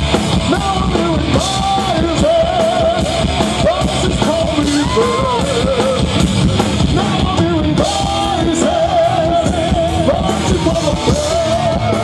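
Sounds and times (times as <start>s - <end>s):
rock band playing: 0.0s - 12.0s
man singing: 0.2s - 12.0s.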